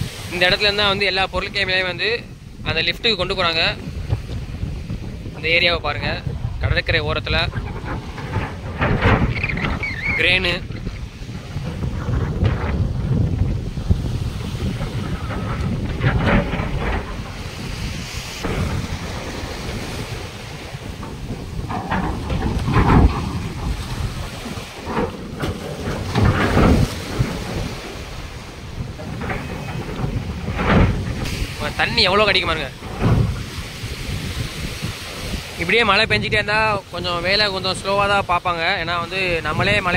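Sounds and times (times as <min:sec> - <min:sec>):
waves splashing against metal barge: 0:00.0 - 0:39.9
wind buffeting microphone: 0:00.0 - 0:39.9.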